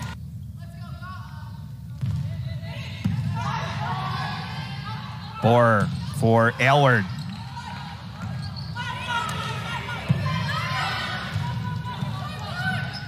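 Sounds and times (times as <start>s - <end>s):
players' voices: 0.0s - 13.0s
crowd noise: 2.3s - 13.0s
sneakers squeaking on court: 7.0s - 10.2s, 11.2s - 13.0s.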